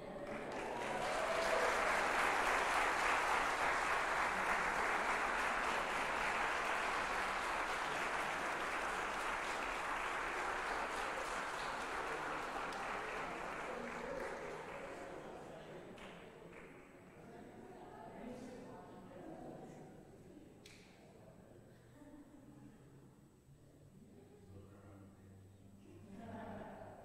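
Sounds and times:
congregation applauding: 0.0 - 16.8.

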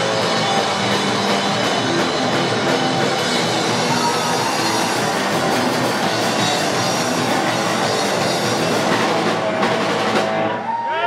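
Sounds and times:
distorted electric guitars: 0.0 - 10.9
rock drums: 0.0 - 11.0.

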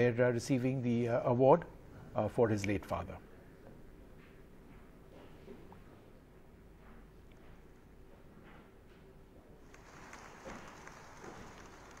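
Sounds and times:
large hall ambience: 0.0 - 12.0.

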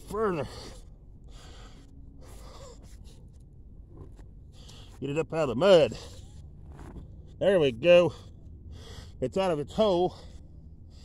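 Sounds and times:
man breathing hard: 0.3 - 3.5, 4.4 - 5.0, 8.1 - 9.3, 9.9 - 11.0.

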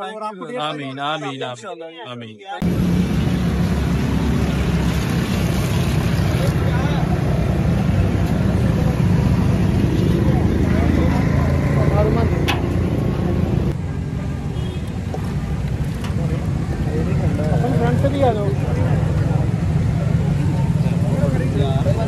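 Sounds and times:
road traffic noise: 2.6 - 22.0
crowd chatter: 6.1 - 22.0.

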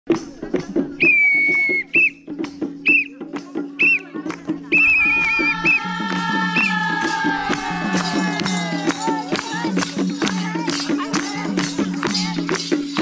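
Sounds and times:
shrill whistle blasts: 1.0 - 2.2, 4.7 - 6.0.

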